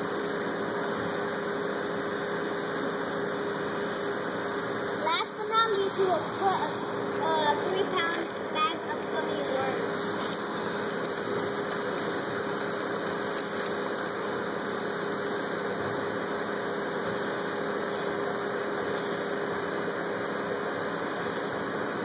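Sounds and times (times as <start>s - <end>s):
mechanical hum: 0.0s - 22.0s.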